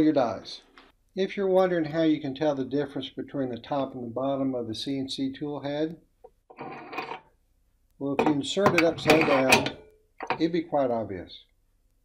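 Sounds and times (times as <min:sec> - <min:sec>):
metal-on-metal scrape: 0:06.5 - 0:07.3, 0:08.2 - 0:10.5.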